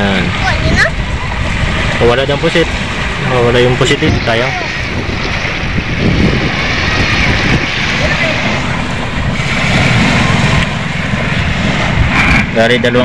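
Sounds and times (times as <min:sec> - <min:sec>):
wind buffeting microphone: 0:00.0 - 0:13.0
waves washing onto pebbles: 0:01.4 - 0:12.4.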